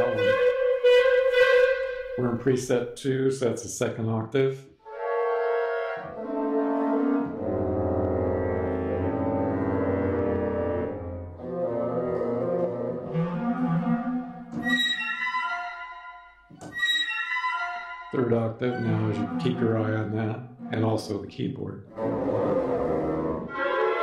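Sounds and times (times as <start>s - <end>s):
deep orchestral part: 0.0s - 3.2s, 4.8s - 24.0s
bright high orchestral phrase: 17.0s - 21.3s
orchestral sustained chords: 17.3s - 21.3s.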